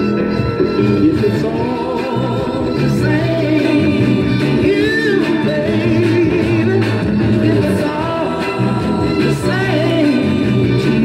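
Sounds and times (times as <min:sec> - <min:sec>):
soul band backing: 0:00.0 - 0:11.0
soul singer: 0:00.6 - 0:11.0.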